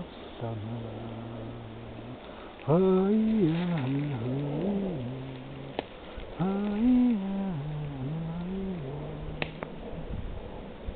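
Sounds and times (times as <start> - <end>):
man singing wordless tune: 0.0 - 9.8.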